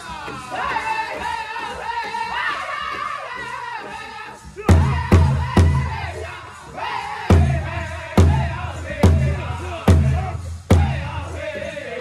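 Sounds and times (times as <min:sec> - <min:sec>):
big drum beats: 0:03.8 - 0:06.3, 0:07.3 - 0:11.7.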